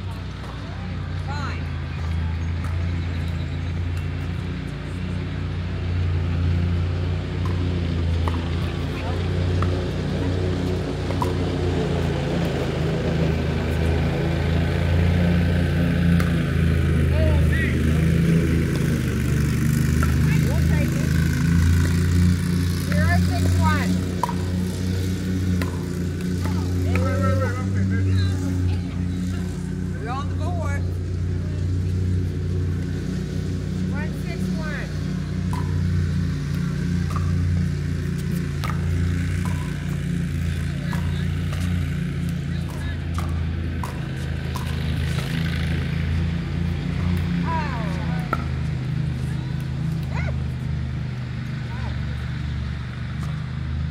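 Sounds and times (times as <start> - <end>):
low engine-like drone: 0.0 - 53.9.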